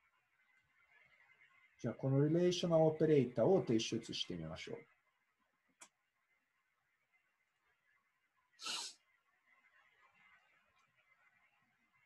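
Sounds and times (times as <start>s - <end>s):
sharp burst of breath: 8.6s - 9.0s.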